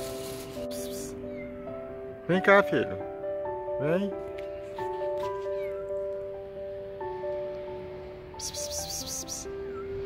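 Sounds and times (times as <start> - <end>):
soft music of long held notes: 0.0 - 10.0
cat meowing: 0.7 - 1.9, 5.4 - 6.0.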